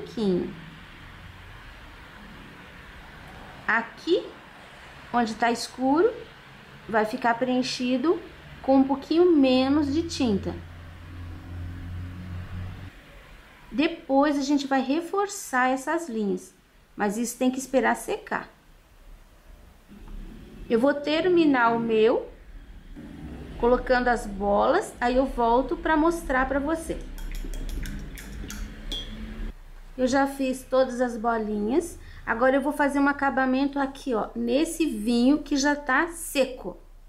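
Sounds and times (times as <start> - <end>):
low steady hum: 0.0 - 37.0.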